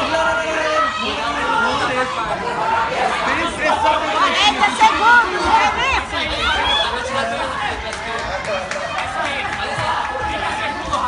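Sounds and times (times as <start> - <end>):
spectators chattering and calling out: 0.0 - 11.0.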